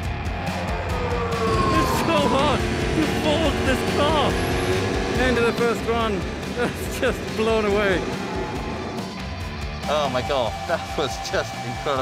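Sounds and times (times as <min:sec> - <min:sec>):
background music: 0:00.0 - 0:12.0
racing car engine: 0:00.0 - 0:12.0.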